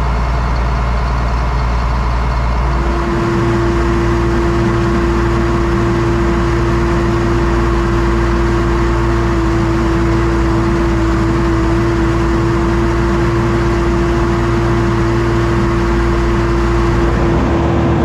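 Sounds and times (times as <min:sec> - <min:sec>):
low machine rumble: 0:00.0 - 0:18.0
steady machine whine: 0:02.3 - 0:18.0.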